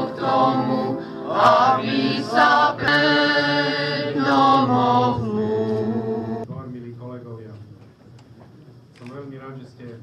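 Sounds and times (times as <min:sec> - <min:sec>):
choir singing slow song: 0:00.0 - 0:06.5.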